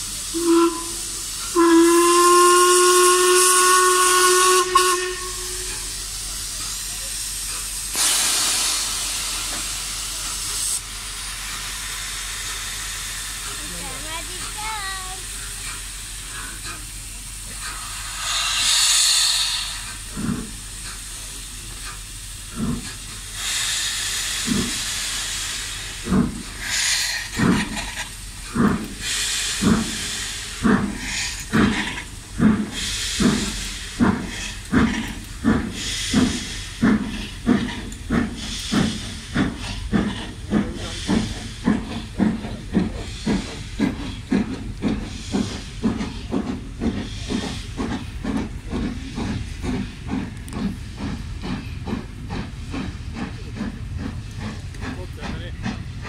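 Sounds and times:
locomotive exhaust beats: 0.0 - 56.0
steam hissing: 0.0 - 56.0
steam locomotive whistle: 0.3 - 5.9.

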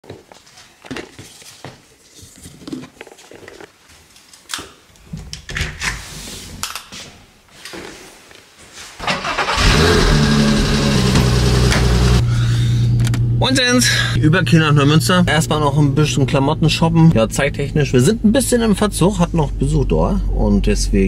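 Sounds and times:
car engine starting and idling: 9.0 - 19.6.

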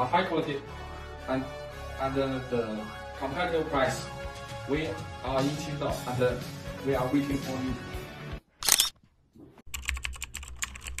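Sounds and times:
keyboard typing clicks: 9.7 - 11.0.

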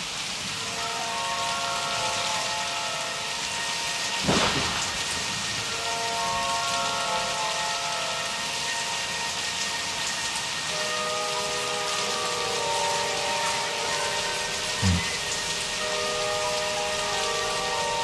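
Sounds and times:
rain sound effect: 0.0 - 18.0.

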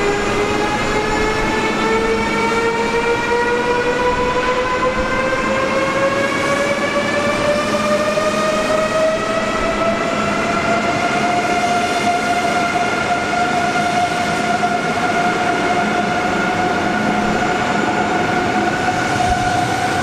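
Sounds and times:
rolling rumble of train cars: 0.0 - 20.0.

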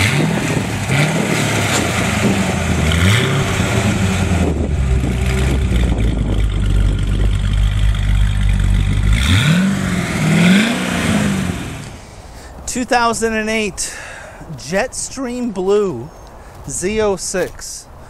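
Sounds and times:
car engine revving and idling: 0.0 - 12.0.

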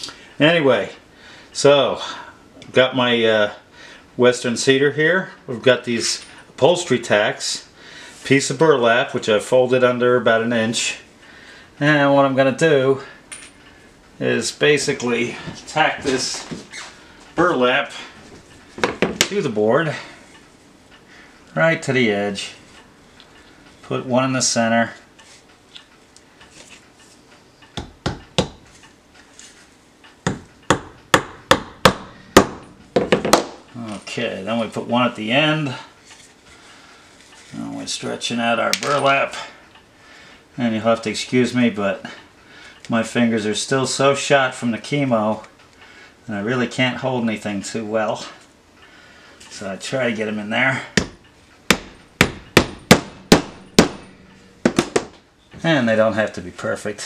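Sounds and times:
mallet tapping tacks into wood: 27.8 - 28.6, 30.3 - 33.6, 51.0 - 54.0.

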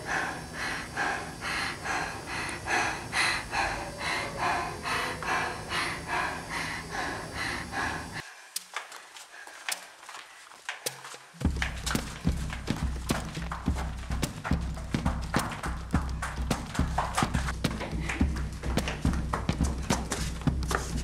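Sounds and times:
low steady drone: 0.0 - 8.2, 11.5 - 21.0.

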